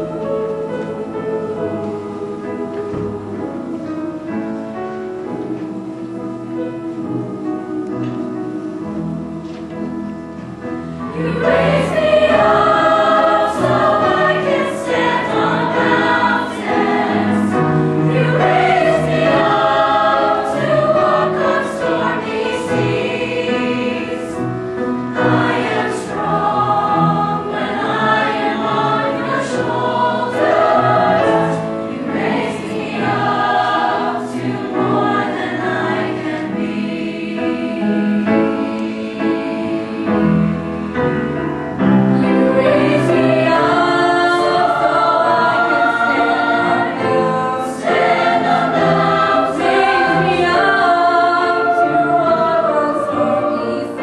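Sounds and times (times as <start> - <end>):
children's choir singing: 0.0 - 54.0.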